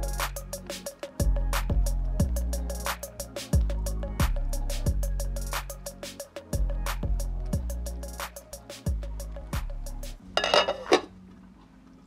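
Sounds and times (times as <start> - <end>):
glass lid clink: 10.4 - 11.1
glass lid scraping clatter: 10.4 - 11.1.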